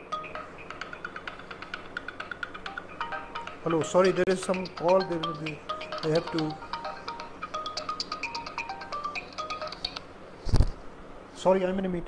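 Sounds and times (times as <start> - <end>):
phone ringtone melody: 0.0 - 10.0.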